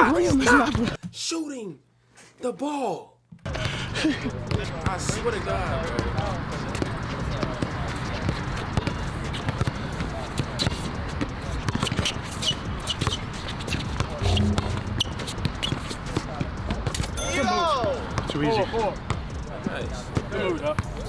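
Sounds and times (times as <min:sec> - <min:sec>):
players' voices: 0:14.0 - 0:16.6.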